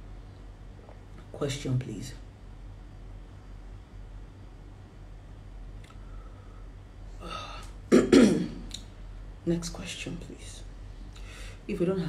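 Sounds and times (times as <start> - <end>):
woman breathing in: 6.0 - 7.7, 11.2 - 11.6
woman clearing throat: 7.9 - 8.7.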